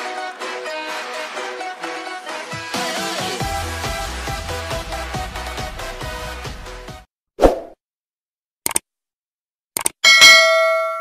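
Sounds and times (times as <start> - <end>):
notification bell ding: 10.0 - 11.0.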